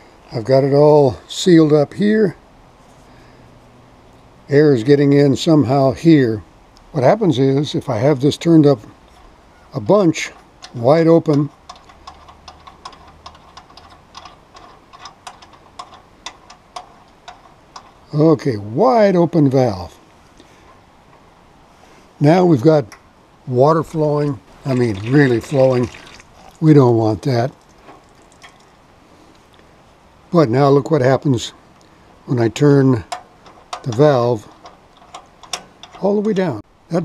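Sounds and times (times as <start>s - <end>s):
water dripping: 24.2s - 28.8s.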